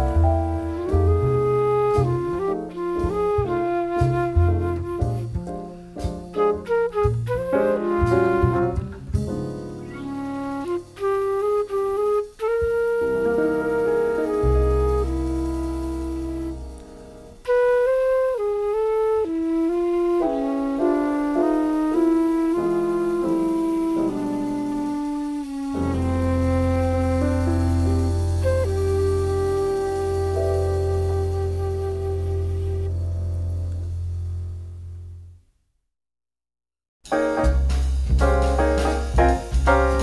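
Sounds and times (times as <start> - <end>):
jazz flute: 0.0 - 35.4, 37.1 - 40.0
piano trio: 0.0 - 35.4, 37.0 - 40.0
deep low held note: 19.0 - 35.4.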